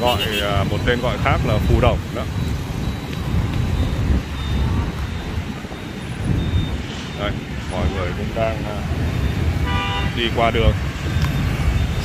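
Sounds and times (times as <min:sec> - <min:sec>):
cars passing close by: 0:00.0 - 0:12.0.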